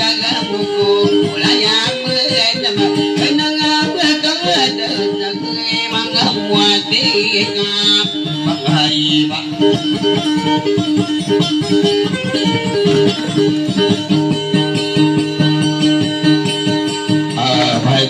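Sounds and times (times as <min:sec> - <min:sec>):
fast plucked guitar notes: 0:00.0 - 0:18.0.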